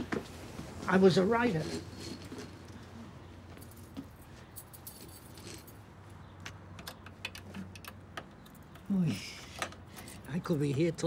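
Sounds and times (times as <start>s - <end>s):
keys jangling: 3.5s - 6.0s.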